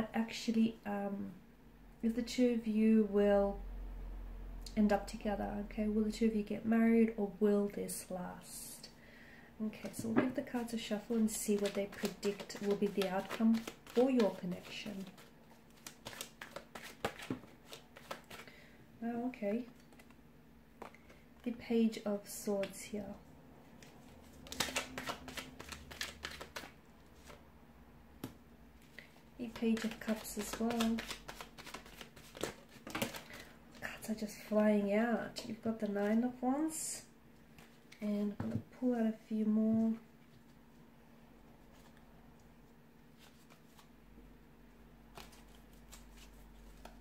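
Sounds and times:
faint steady hum: 0.0s - 47.0s
cards shuffling: 9.8s - 18.5s, 23.8s - 27.4s, 28.2s - 33.5s, 45.1s - 47.0s.

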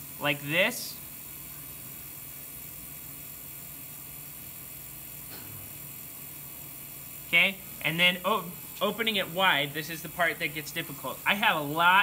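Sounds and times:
potter's wheel humming: 0.0s - 12.0s.

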